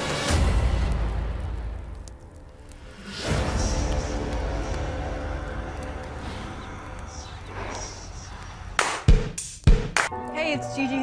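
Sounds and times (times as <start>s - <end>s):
low drone: 0.0s - 9.2s.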